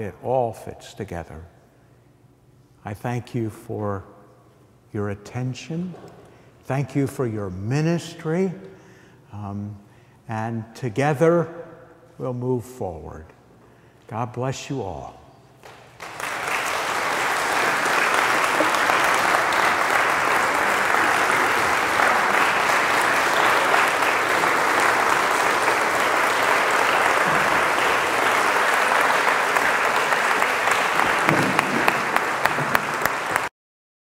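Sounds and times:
audience applauding: 15.6s - 33.5s.

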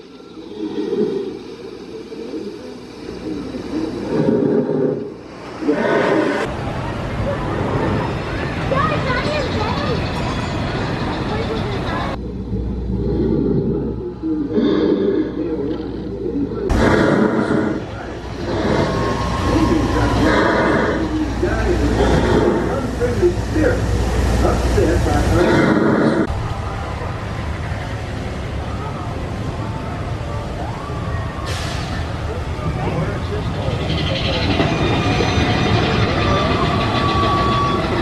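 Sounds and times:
low rumble: 0.0s - 31.1s
people's voices: 0.0s - 38.0s
roller coaster rumbling on track: 0.0s - 38.0s
riders' voices: 14.0s - 26.3s.

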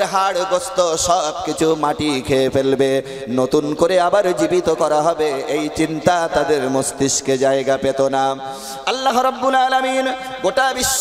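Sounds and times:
man preaching in chanted voice: 0.0s - 11.0s.

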